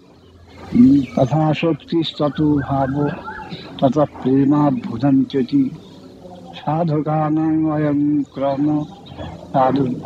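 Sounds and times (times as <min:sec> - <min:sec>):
man speaking: 0:00.6 - 0:05.8, 0:06.5 - 0:10.0.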